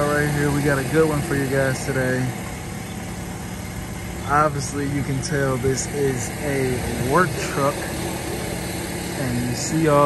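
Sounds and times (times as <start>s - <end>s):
engine idling hum: 0.0s - 10.0s
person speaking: 4.2s - 8.0s.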